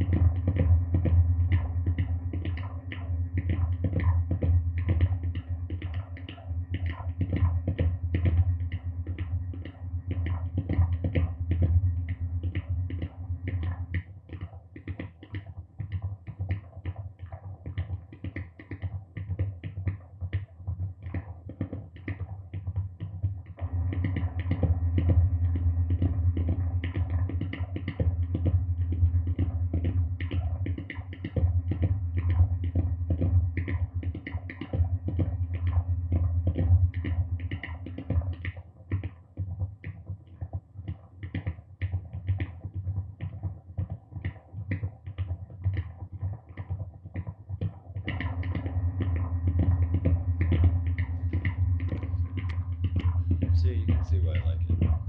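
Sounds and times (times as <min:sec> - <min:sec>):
steady low hum: 0:00.0 - 0:41.2, 0:42.0 - 0:55.0
crackle of rapid clicks: 0:00.0 - 0:55.0.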